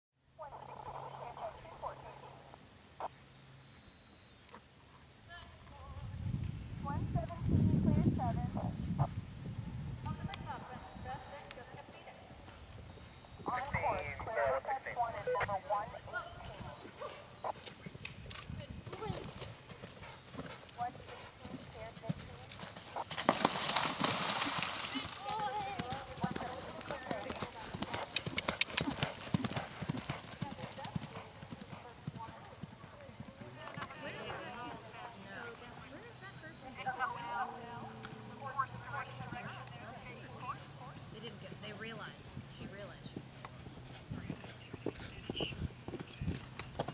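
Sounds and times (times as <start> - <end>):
people's voices: 13.4 - 17.0, 24.5 - 43.2
horse hoofbeats on dirt: 16.2 - 33.9, 42.6 - 46.9.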